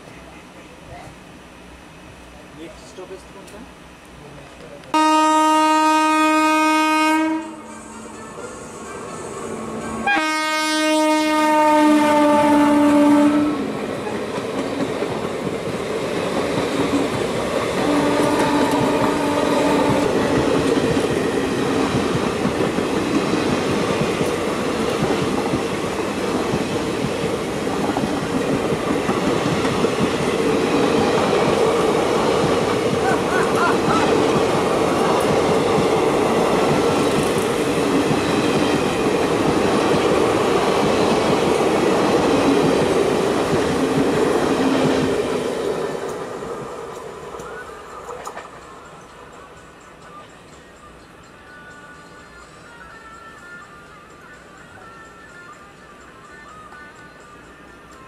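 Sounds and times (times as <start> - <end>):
train coaches passing: 0.0 - 58.0.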